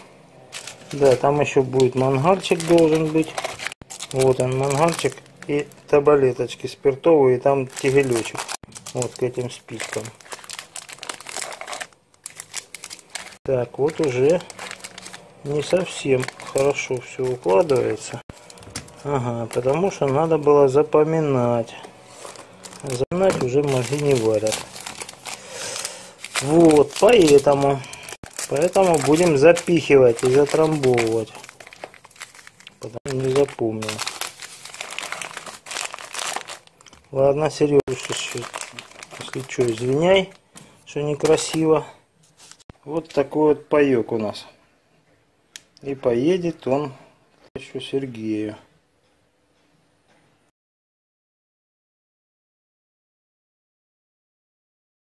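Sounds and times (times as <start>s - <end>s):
plastic wrappers crinkling: 0.5s - 6.1s, 7.5s - 20.8s, 21.5s - 41.8s.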